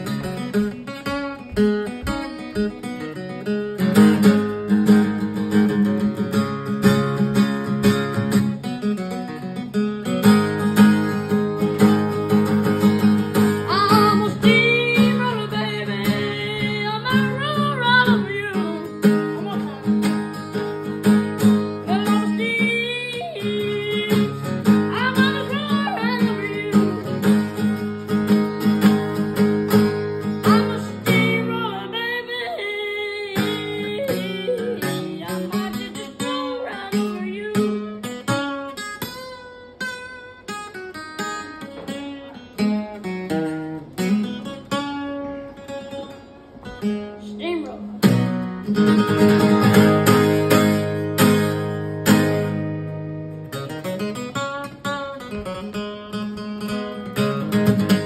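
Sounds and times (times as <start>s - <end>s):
acoustic guitar: 0.0s - 58.0s
young person singing: 13.6s - 19.9s, 21.8s - 27.1s, 30.4s - 38.0s.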